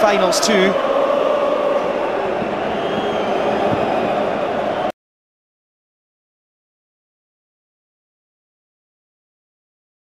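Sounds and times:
stadium crowd singing: 0.0 - 4.9.

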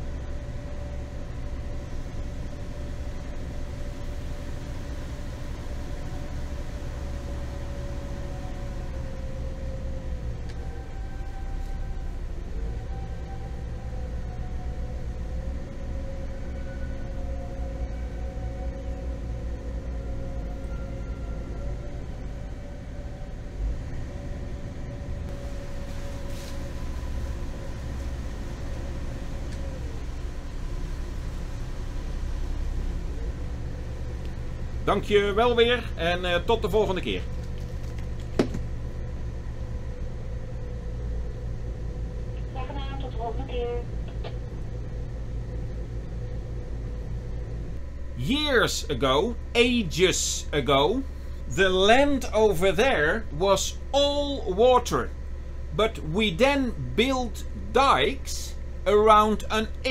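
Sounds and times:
boat engines rumbling: 0.0 - 59.9
thin high engine tone: 38.6 - 59.9.

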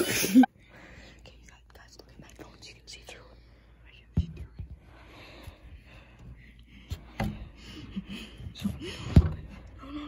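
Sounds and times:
faint whispering: 1.1 - 4.9.

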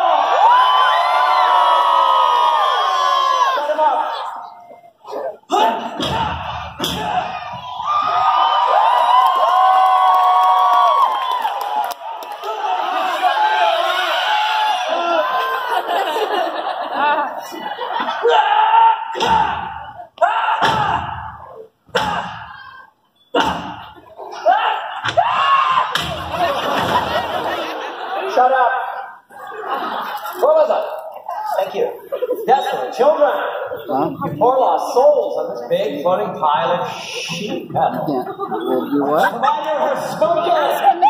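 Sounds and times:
crowd cheering and shouting: 0.0 - 4.7, 5.5 - 16.1, 18.1 - 22.9, 24.2 - 28.6.

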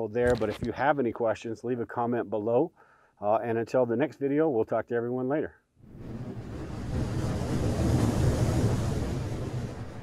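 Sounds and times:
rushing rumbling whoosh: 5.8 - 10.0.

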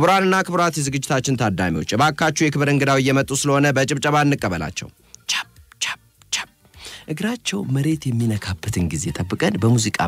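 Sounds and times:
person whispering: 5.2 - 7.0.

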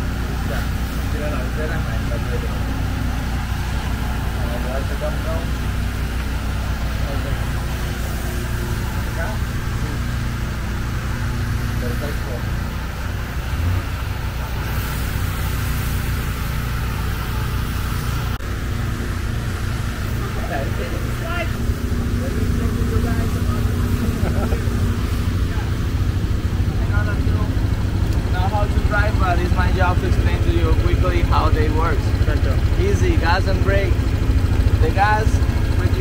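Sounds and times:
people talking: 0.0 - 5.7, 6.6 - 10.7, 11.4 - 12.7, 19.9 - 34.0, 34.7 - 36.0
engine idling: 0.0 - 36.0.

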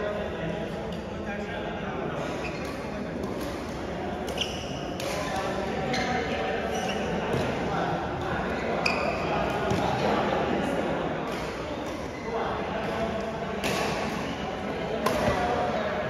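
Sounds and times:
shoes squeaking on court floor: 2.4 - 3.0, 4.3 - 7.5, 8.6 - 9.4
rackets hitting shuttlecock: 2.6 - 5.6, 13.6 - 14.3, 15.0 - 15.6.

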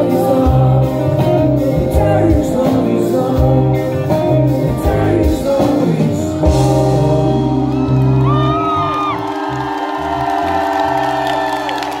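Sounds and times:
live rock band playing: 0.0 - 12.0
crowd cheering and whooping: 6.8 - 12.0.

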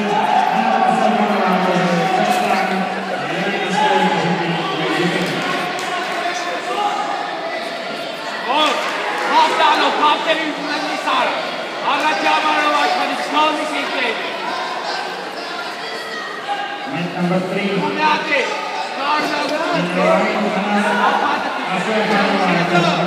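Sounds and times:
crowd noise hum: 0.0 - 23.0
people calling out and talking: 0.0 - 23.0.

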